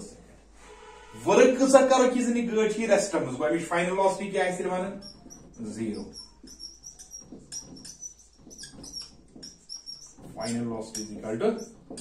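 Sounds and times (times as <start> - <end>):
whiteboard marker squeaking: 1.4 - 12.0.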